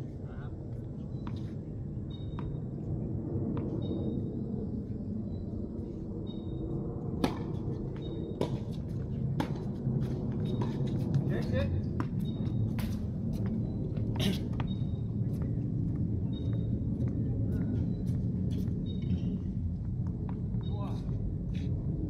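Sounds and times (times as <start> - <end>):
low background hum: 0.0 - 22.0
tennis ball struck by rackets: 7.2 - 7.6.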